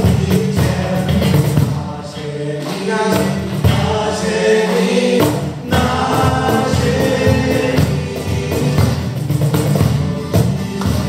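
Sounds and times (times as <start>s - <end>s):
group singing: 0.0s - 10.1s
acoustic guitar: 0.0s - 11.0s.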